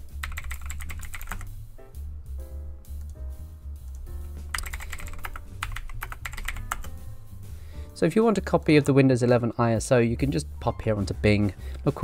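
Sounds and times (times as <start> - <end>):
typing on computer keyboard: 0.2 - 1.5, 4.5 - 6.9.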